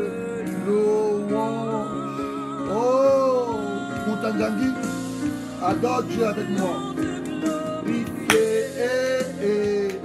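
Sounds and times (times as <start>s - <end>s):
accompanying music: 0.0s - 10.0s
man singing worship song: 0.0s - 10.0s
sharp knock: 8.3s - 8.6s.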